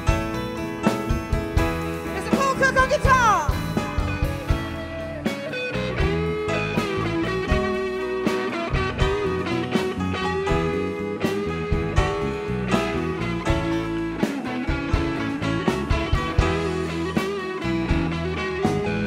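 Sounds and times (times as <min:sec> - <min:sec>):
electric guitar lead bending notes: 0:00.0 - 0:19.0
soul band playing: 0:00.0 - 0:19.0.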